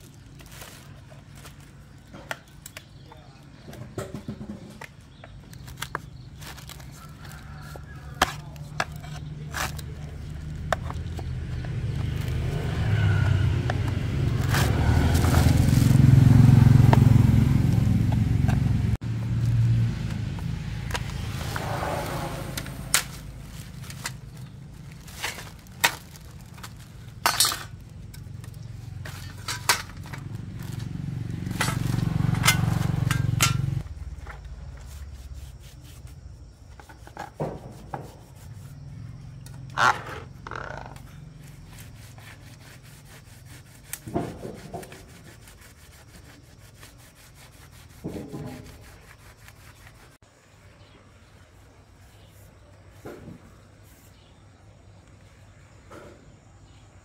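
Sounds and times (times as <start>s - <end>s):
low rumble: 12.6s - 27.1s.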